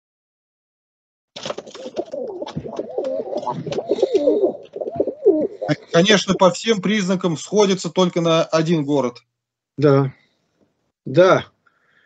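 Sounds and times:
wavering bird calls: 2.2 - 6.2.

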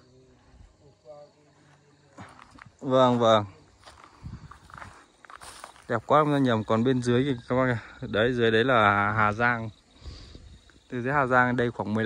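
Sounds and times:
soft footsteps outdoors: 0.0 - 12.0.

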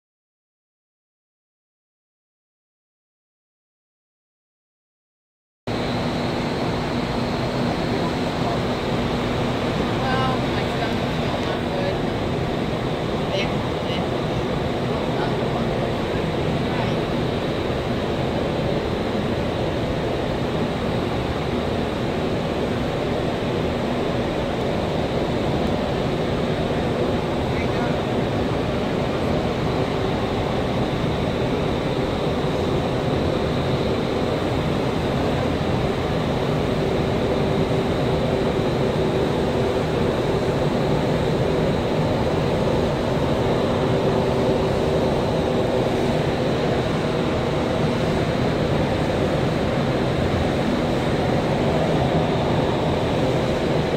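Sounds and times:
constant fan hum: 5.7 - 53.9.

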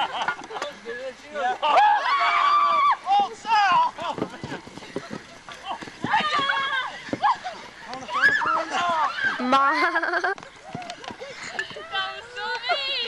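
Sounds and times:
people yelling and laughing: 0.0 - 13.0
footfalls: 3.4 - 11.9.

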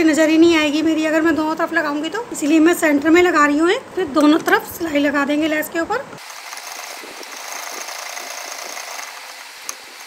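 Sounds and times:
sewing machine running: 6.2 - 10.0.

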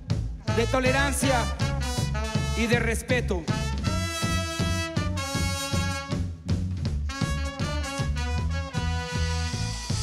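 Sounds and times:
bass guitar: 0.0 - 10.0
drum kit: 0.0 - 10.0
horn section chords: 0.4 - 10.0.

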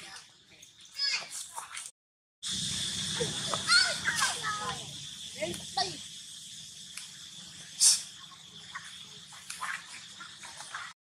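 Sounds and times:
high drone of insects: 2.4 - 11.0
brief hissing burst: 7.7 - 8.2.

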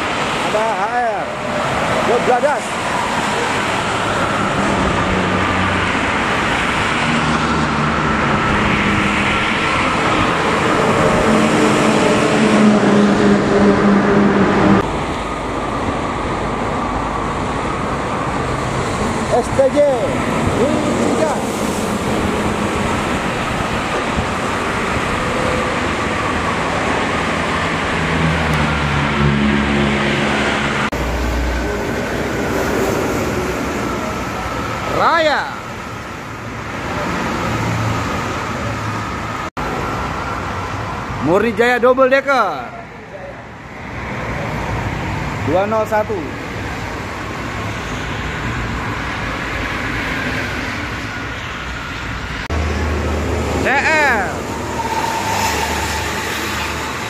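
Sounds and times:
highway traffic rushing: 0.0 - 57.0.

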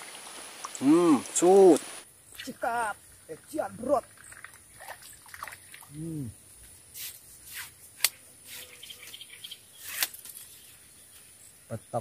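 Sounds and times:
water trickling and dripping: 0.0 - 6.8
rustles: 5.6 - 11.7
person humming: 5.9 - 6.3.

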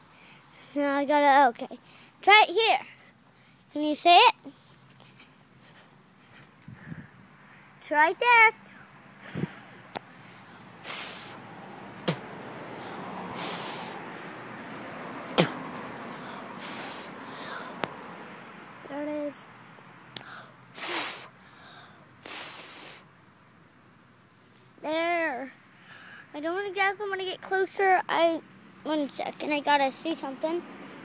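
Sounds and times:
faint steady background: 0.0 - 31.0.

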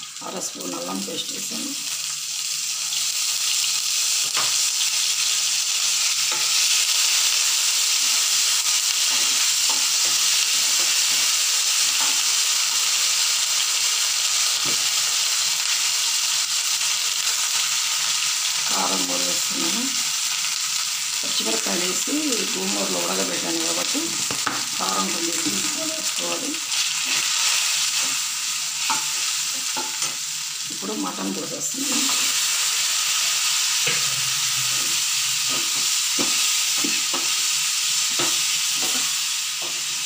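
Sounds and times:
meat sizzling in hot oil: 0.0 - 40.0.

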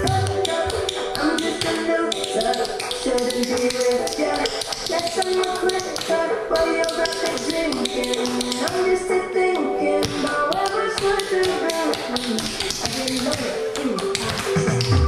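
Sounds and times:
recorded pop song: 0.0 - 15.0
tap shoes on tile floor: 10.0 - 15.0.

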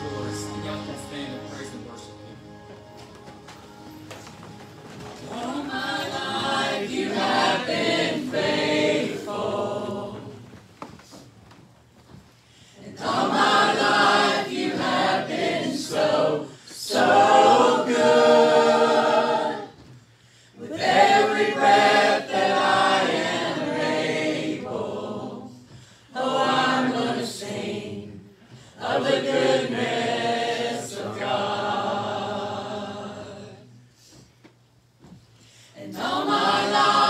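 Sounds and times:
group singing a cappella: 0.0 - 2.3, 5.2 - 10.6, 12.8 - 19.9, 20.6 - 34.2, 35.7 - 37.0.

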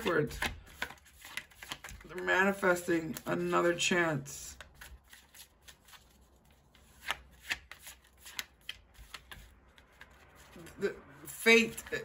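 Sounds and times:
cards being shuffled by hand: 0.0 - 3.6, 4.5 - 12.0.

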